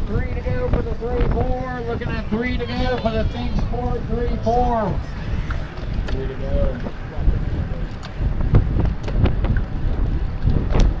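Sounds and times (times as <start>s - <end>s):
road noise: 0.0s - 11.0s
wind buffeting microphone: 0.0s - 11.0s.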